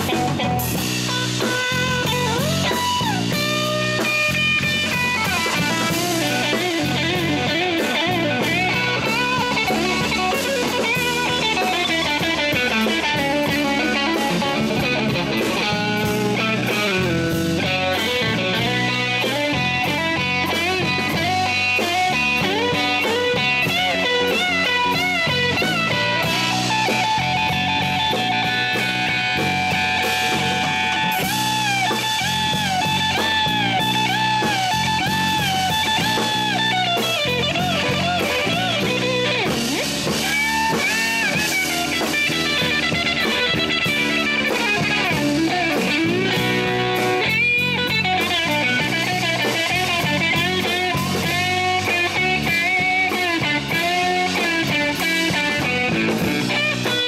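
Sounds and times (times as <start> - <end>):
electric guitar lead with bent notes: 0.0 - 57.0
live blues band playing: 0.0 - 57.0.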